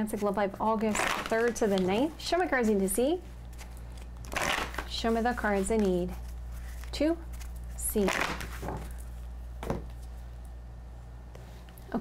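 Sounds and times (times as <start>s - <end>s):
cards being shuffled: 0.1s - 2.8s, 3.5s - 10.2s.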